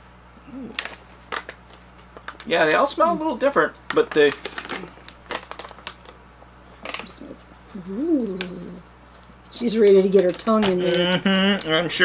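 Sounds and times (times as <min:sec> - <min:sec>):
plastic bag crinkling: 0:00.8 - 0:02.6, 0:03.2 - 0:06.2.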